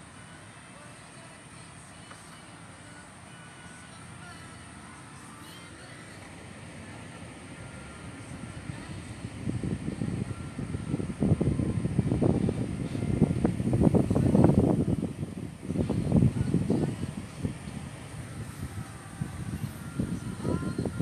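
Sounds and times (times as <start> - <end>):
wind buffeting microphone: 7.7 - 21.0.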